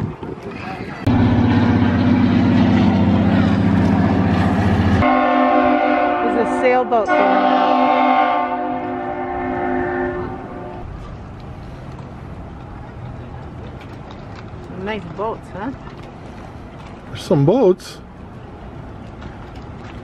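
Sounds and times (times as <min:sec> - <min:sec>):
deep horn blast: 0:01.1 - 0:10.9
higher-pitched horn tone: 0:01.1 - 0:10.9.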